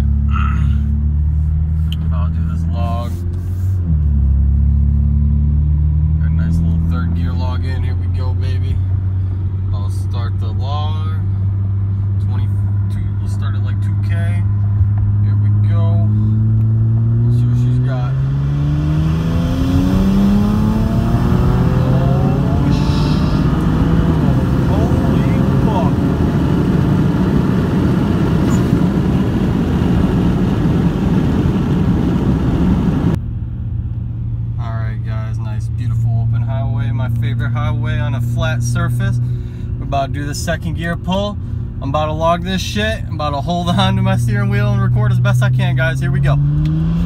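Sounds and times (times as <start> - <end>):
car engine accelerating: 0.0 - 47.0
wind noise: 18.8 - 33.2.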